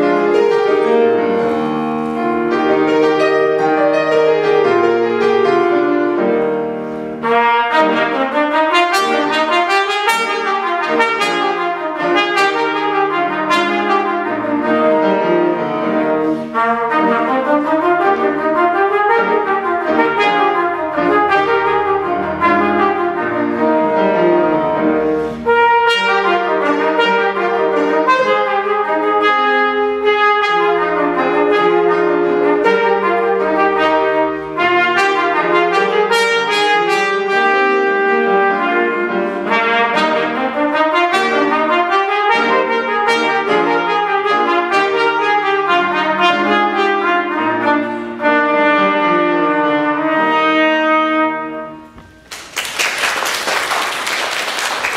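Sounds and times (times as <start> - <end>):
trumpet playing: 0.0 - 52.5
grand piano accompaniment: 0.0 - 54.9
audience applause: 52.2 - 54.9.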